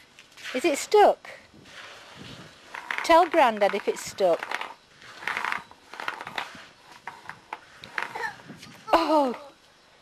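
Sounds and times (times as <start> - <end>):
broom scraping on brick paving: 0.3 - 8.9.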